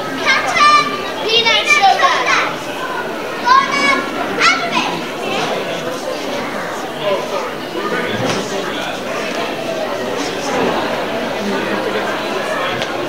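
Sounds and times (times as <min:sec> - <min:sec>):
children shouting: 0:00.0 - 0:13.0
crowd murmur: 0:00.0 - 0:13.0.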